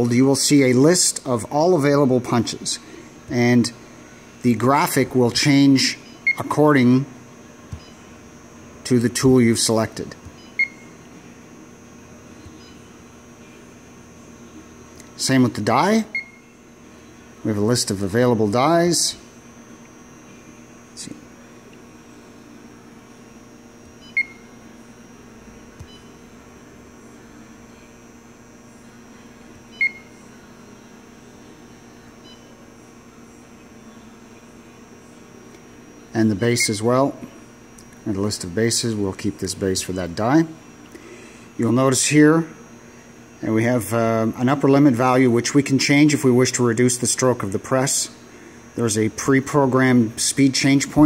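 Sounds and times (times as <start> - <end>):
steady faint hum: 0.0 - 51.0
high electronic beep: 29.7 - 30.2.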